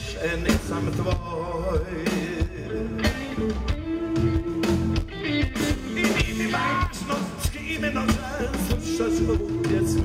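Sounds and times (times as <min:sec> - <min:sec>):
drum kit: 0:00.0 - 0:10.0
electric guitar: 0:00.0 - 0:10.0
man singing: 0:00.0 - 0:10.0.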